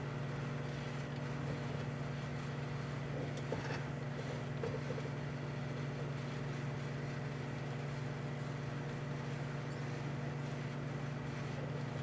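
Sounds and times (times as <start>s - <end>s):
microwave oven humming: 0.0s - 12.0s.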